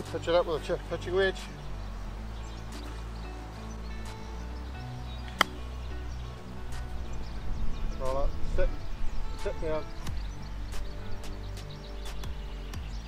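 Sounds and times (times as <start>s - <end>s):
background music with sustained tones: 0.0s - 13.0s
golf club striking ball: 5.2s - 5.8s.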